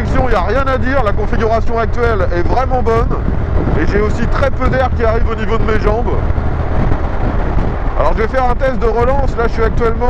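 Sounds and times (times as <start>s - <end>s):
motorcycle engine cruising: 0.0s - 10.0s
wind rush on microphone: 0.0s - 10.0s.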